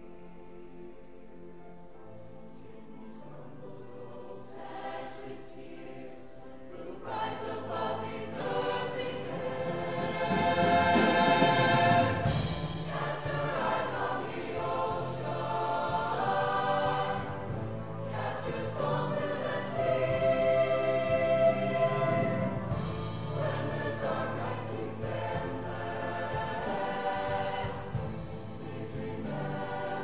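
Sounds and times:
choir singing sustained chords: 0.0 - 30.0.

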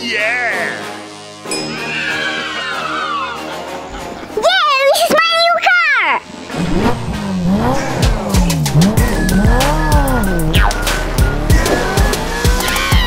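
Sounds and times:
background music with steady beat: 0.0 - 4.4, 6.2 - 13.0
car engine revving: 6.3 - 13.0.

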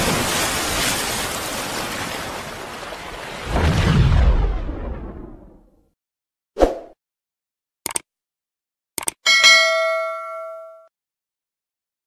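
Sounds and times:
bell ding: 9.3 - 10.9.

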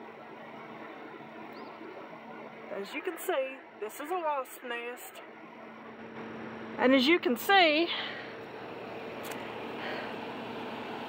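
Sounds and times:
faint hum: 0.0 - 11.0.

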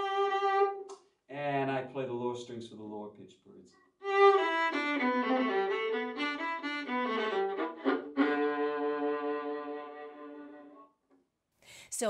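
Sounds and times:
violin bowed on low strings: 0.0 - 0.9, 4.0 - 10.8.

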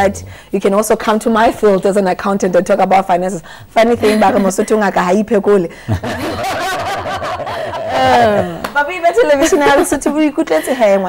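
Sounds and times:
people laughing: 3.9 - 4.8, 5.9 - 11.0.

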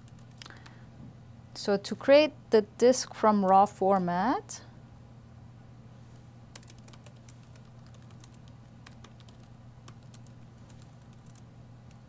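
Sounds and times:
typing on laptop keyboard: 0.0 - 0.8, 6.5 - 12.0
low steady hum: 0.0 - 12.0.

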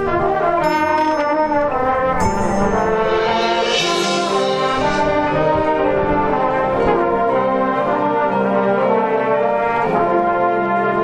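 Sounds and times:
marching band brass chords: 0.0 - 11.0.

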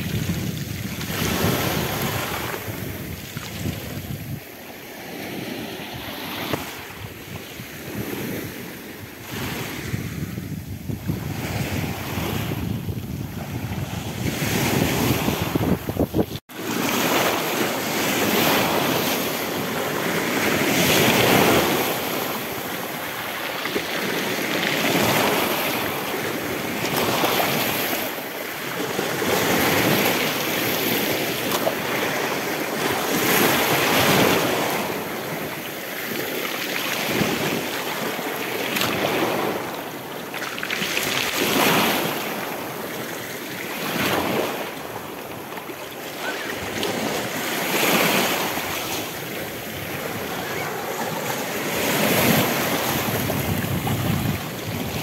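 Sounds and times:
sea waves washing over rocks: 10.8 - 55.0.

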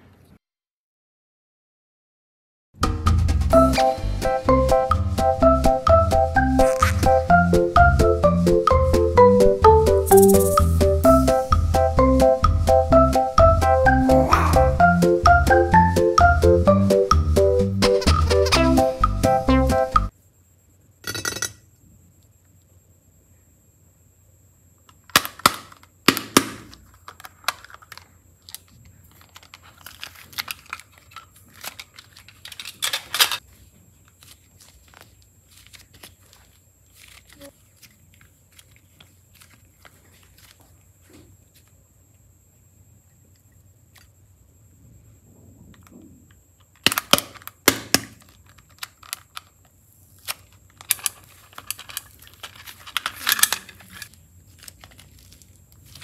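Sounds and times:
dense crackling: 6.6 - 7.3
sharp plastic snaps: 24.9 - 28.6, 46.6 - 49.5
plastic clicks and rustling: 26.7 - 33.4, 46.6 - 56.0.

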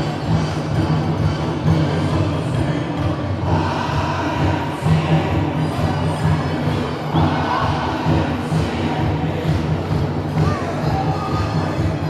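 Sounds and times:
festival music: 0.0 - 12.0
large crowd noise: 0.0 - 12.0.

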